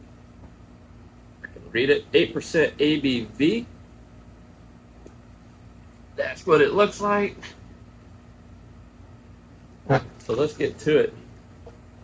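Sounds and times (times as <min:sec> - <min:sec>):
background hum and hiss: 0:00.0 - 0:12.0.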